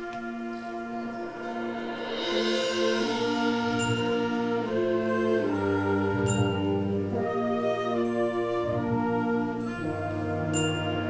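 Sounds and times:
symphonic band playing chords: 0.0s - 11.0s.

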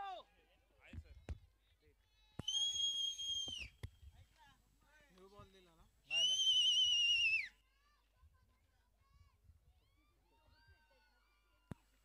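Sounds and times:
shrill whistle: 2.4s - 3.8s, 6.1s - 7.6s.

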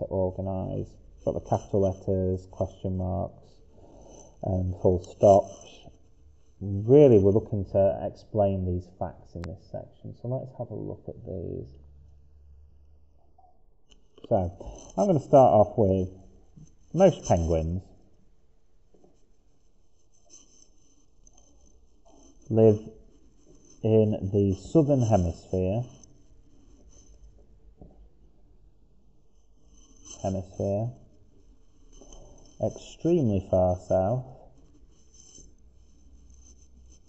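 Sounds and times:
pen scratching on paper: 3.7s - 7.4s, 14.0s - 17.7s, 19.2s - 27.4s, 29.3s - 37.0s.

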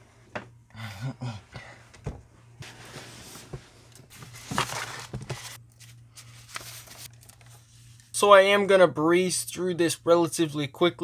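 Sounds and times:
rustling and handling noise: 1.7s - 8.2s.

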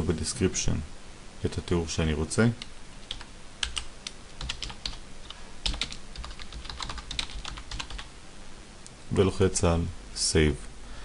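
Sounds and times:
keyboard typing: 2.6s - 8.1s.

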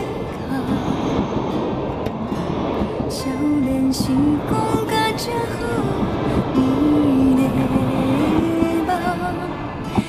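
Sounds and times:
train wheels on rail: 0.0s - 10.0s.

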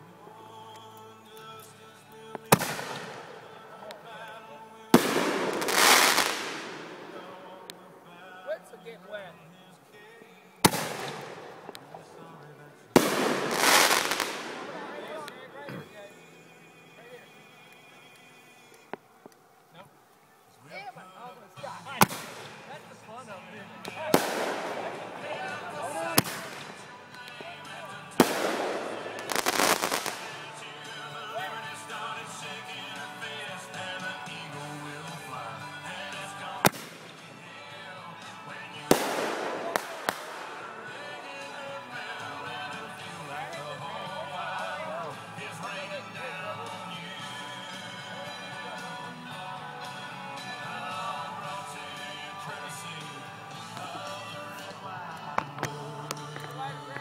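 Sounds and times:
firework crackling: 2.1s - 8.4s, 10.6s - 16.6s, 21.7s - 32.4s, 33.2s - 37.6s, 38.2s - 44.6s
firework bangs: 2.4s - 3.6s, 5.0s - 7.8s, 10.6s - 12.2s, 13.0s - 15.3s, 22.0s - 22.7s, 24.1s - 26.9s, 28.1s - 30.6s, 36.6s - 37.2s, 38.9s - 41.1s
firework hissing burst: 5.0s - 7.6s, 13.0s - 15.0s, 28.2s - 30.5s.

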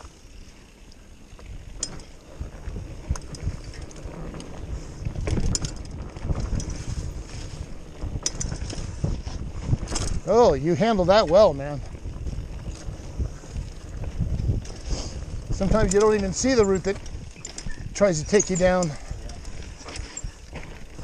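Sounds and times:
bike clicking and rattling: 0.0s - 21.0s
wind buffeting the microphone: 1.3s - 21.0s
tyres rumbling over dirt: 1.4s - 21.0s.

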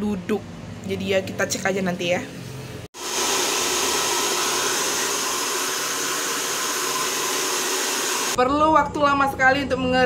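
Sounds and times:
hair dryer blowing: 2.9s - 8.4s.

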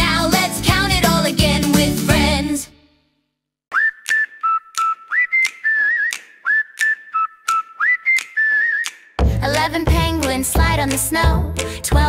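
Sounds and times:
whistled melody: 3.7s - 9.2s
sharp clicks beat: 4.0s - 9.1s.

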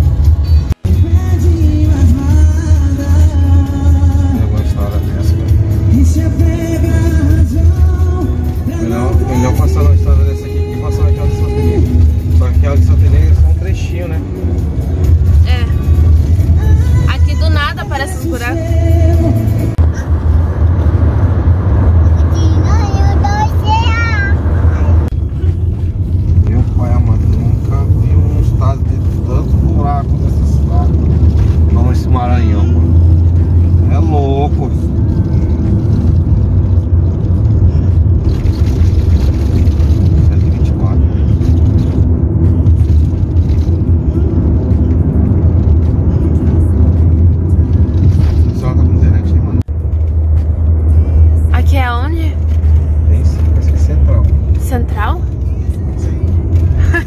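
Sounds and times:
car cabin road drone: 0.0s - 57.0s
person singing or speaking: 8.7s - 11.9s.

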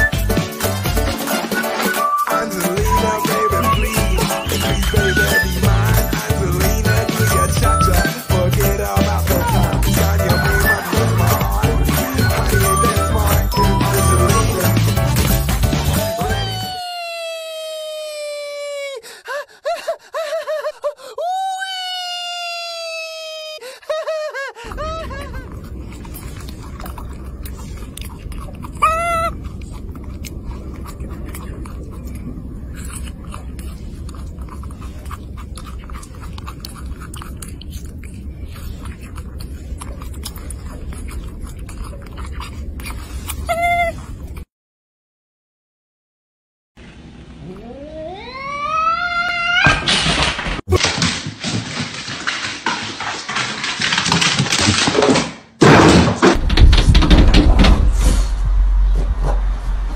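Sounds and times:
low background rumble: 24.7s - 44.4s, 56.4s - 59.9s
baby macaque coo call: 28.8s - 29.4s.

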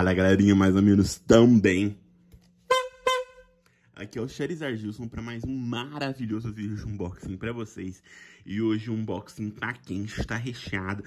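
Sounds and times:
honking tones: 2.7s - 3.6s.

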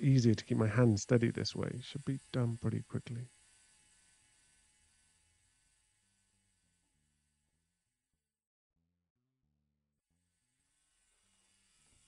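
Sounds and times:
faint tattoo machine buzz: 0.0s - 8.4s, 10.0s - 12.0s.

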